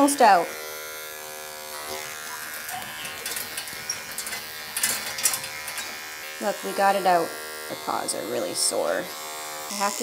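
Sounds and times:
electric pet clipper running: 0:00.0 - 0:10.0.

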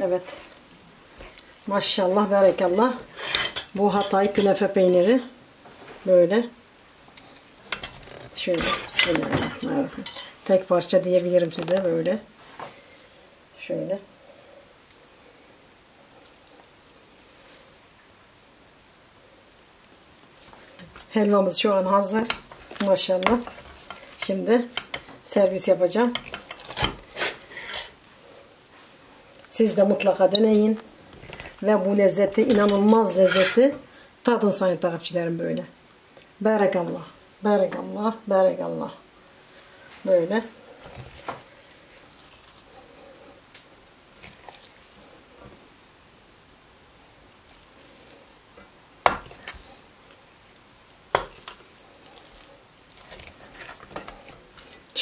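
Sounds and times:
wooden spoon scraping steel pot: 0:22.0 - 0:28.0, 0:29.8 - 0:33.8, 0:52.2 - 0:55.0.

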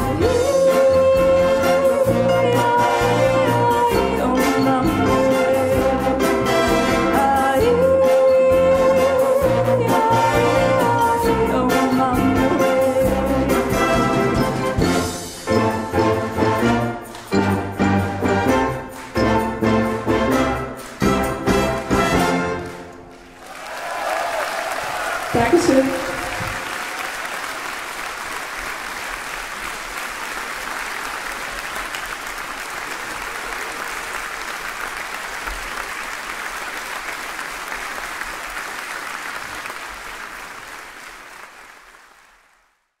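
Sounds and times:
audience applauding: 0:21.7 - 0:43.0.

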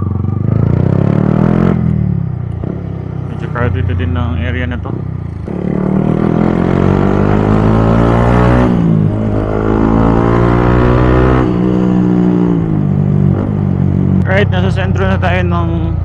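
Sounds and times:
motorcycle engine revving: 0:00.0 - 0:16.0.

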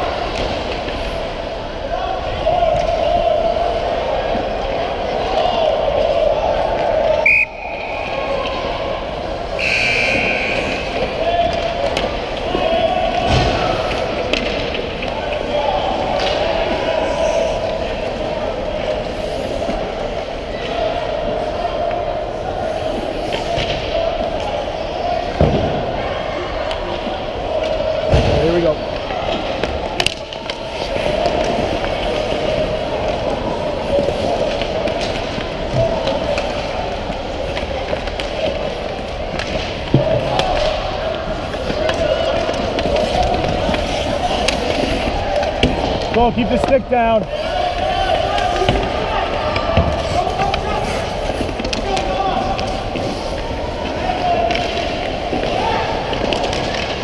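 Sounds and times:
sticks and puck clacking: 0:08.0 - 0:25.7, 0:26.6 - 0:57.0
skates on ice: 0:26.7 - 0:57.0.

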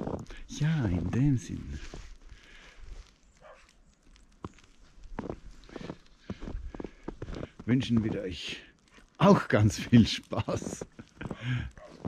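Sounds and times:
footsteps in snow: 0:00.0 - 0:12.0.

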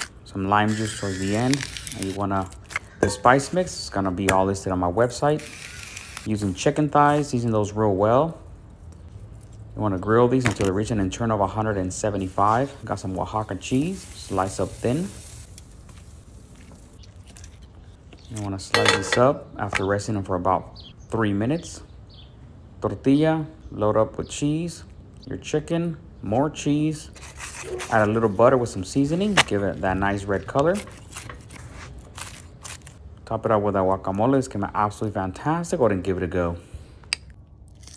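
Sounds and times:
knife crunching through tortilla: 0:00.7 - 0:03.0, 0:30.6 - 0:33.0
chicken sizzling on grill: 0:13.0 - 0:16.6.

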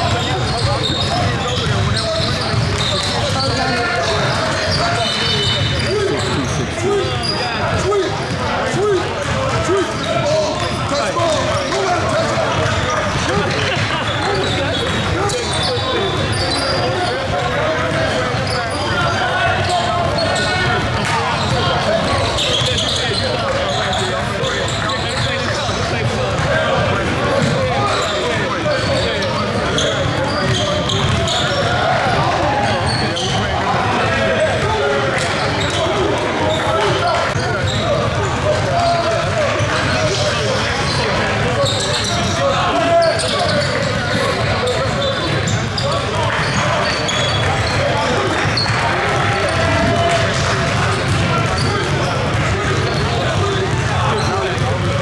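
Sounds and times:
basketballs bouncing on wood floor: 0:00.0 - 0:55.0
echoing indistinct voices: 0:00.0 - 0:55.0.

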